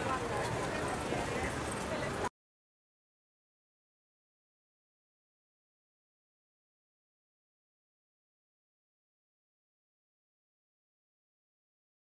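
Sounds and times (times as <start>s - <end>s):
crowd talking: 0.0s - 2.3s.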